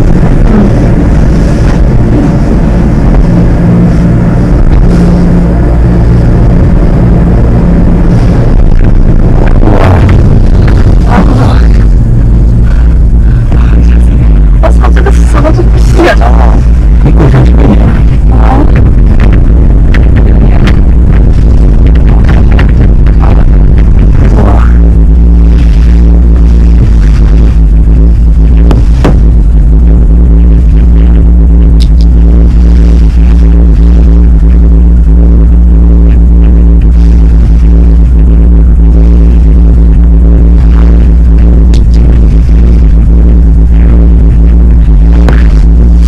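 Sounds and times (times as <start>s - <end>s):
cable car low rumble: 0.0s - 46.0s
low droning hum: 0.0s - 46.0s.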